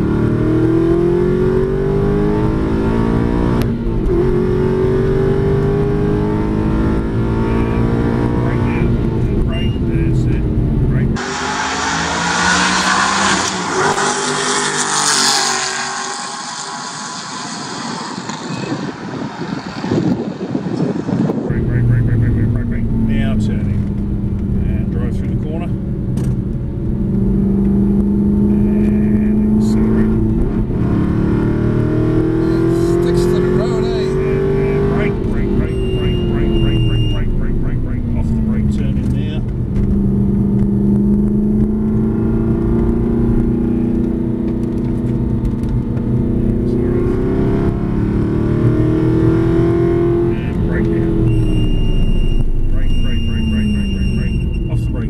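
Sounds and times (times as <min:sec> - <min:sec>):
car engine heard from inside cabin: 0:00.0 - 0:11.2, 0:20.0 - 0:55.0
car passing at speed: 0:11.2 - 0:21.5.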